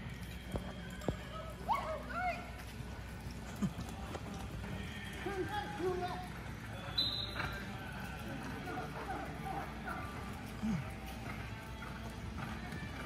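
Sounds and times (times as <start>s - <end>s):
horse hoofbeats on soft dirt: 0.0s - 13.0s.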